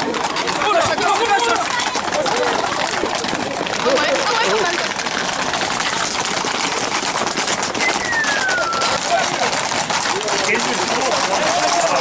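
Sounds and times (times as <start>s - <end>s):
hooves clattering on tarmac: 0.0s - 12.0s
falling whistle: 7.8s - 9.0s.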